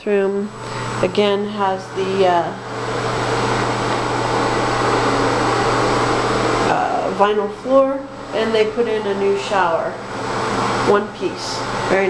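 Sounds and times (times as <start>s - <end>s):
small motor whirring: 0.5s - 6.7s.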